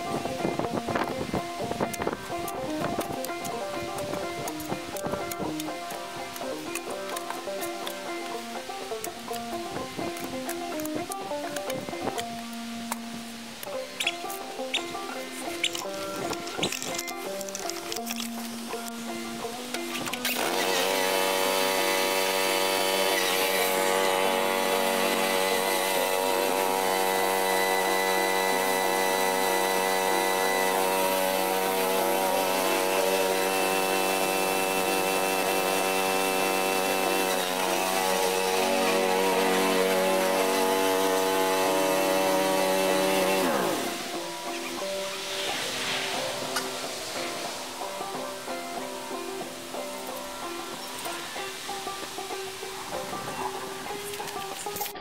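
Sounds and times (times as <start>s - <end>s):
lawn tractor engine: 0.0s - 53.2s
banjo music: 0.0s - 55.0s.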